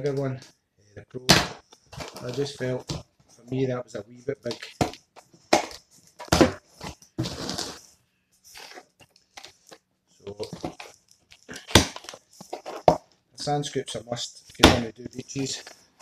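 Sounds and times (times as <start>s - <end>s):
packing tape and cardboard ripping: 4.6s - 7.8s, 10.4s - 12.9s.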